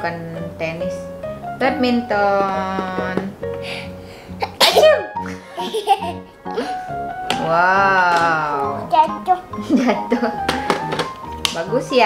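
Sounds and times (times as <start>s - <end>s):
background music: 0.0s - 12.0s
small child sneezing: 4.4s - 5.0s.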